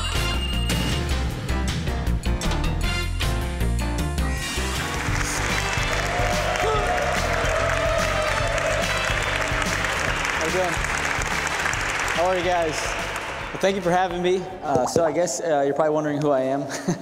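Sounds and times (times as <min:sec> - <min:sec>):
background music: 0:00.0 - 0:17.0
audience applauding: 0:04.6 - 0:14.4.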